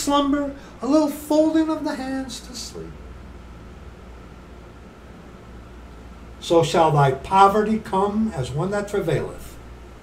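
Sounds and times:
box fan whirring: 0.0s - 10.0s.

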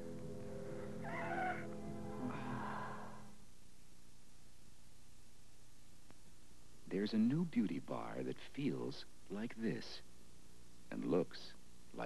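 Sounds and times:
short wavering cry: 0.8s - 3.4s.

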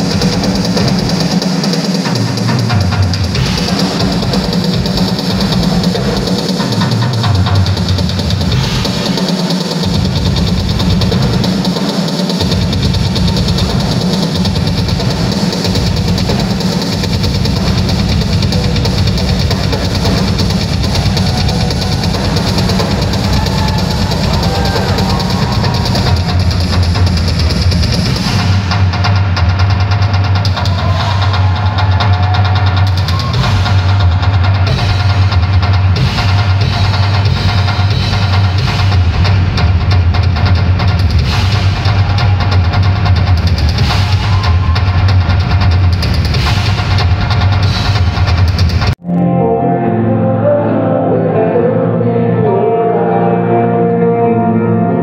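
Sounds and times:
drum kit solo: 0.0s - 49.1s.

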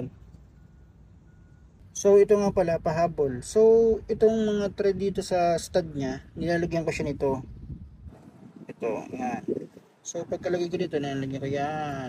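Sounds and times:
faint electronic beeps: 0.0s - 2.1s.

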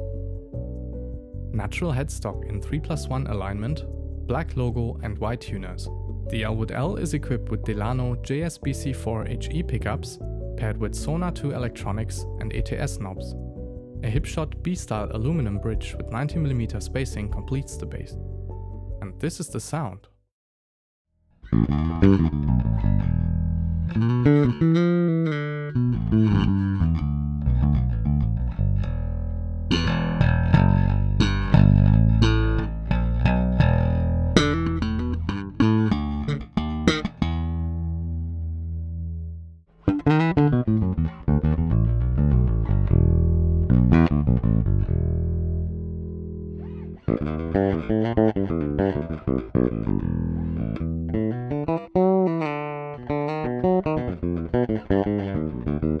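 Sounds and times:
electric bass plucked fingerstyle: 0.0s - 20.1s, 21.3s - 56.0s.

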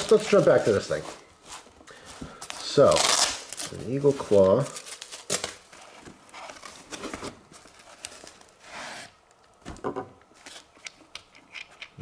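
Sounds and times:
cloth rustling and rubbing: 0.0s - 4.6s.

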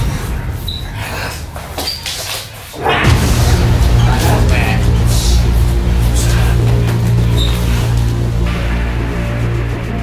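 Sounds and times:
loud music: 2.8s - 10.0s.

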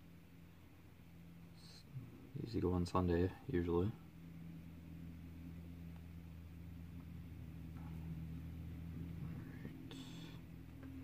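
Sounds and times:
low room hum: 0.0s - 11.0s.

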